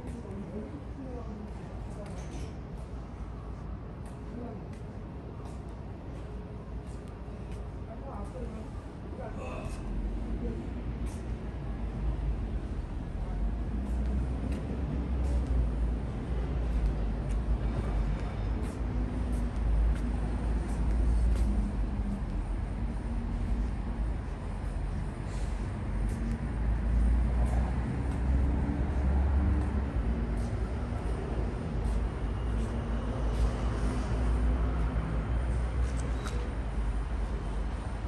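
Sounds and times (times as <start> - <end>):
low rumble of city traffic: 0.0 - 38.0.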